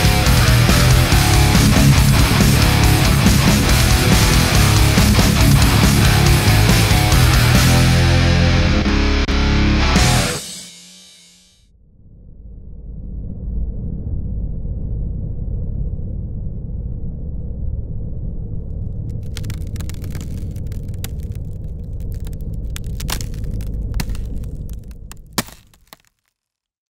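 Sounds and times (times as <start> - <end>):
deep steady rumble: 0.0 - 8.7, 12.0 - 25.4
crackling: 18.7 - 26.6
loud crack: 19.1 - 26.2.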